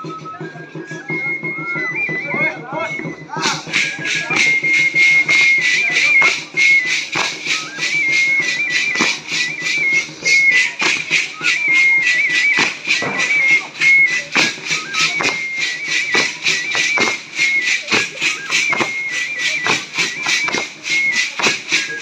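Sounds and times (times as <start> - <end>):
fast steady percussion: 0.0 - 22.0
high-pitched pipe melody: 0.0 - 22.0.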